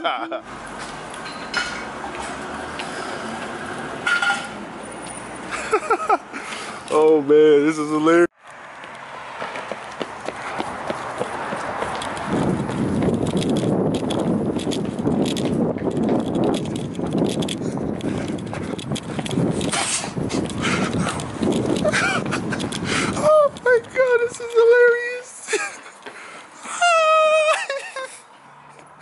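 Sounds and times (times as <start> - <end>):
footsteps on asphalt: 8.4 - 24.9, 25.6 - 26.6, 28.7 - 29.0
wind rushing: 9.4 - 24.0.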